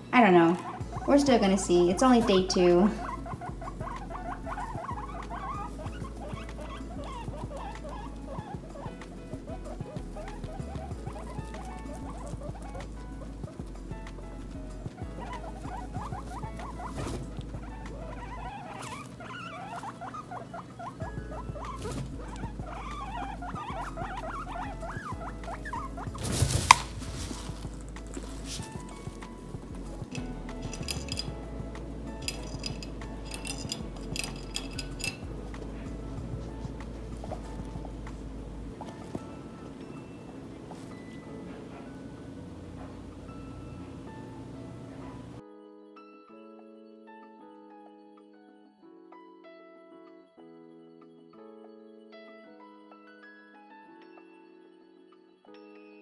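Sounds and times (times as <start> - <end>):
guinea pigs rustling in hay: 0.1 - 42.0.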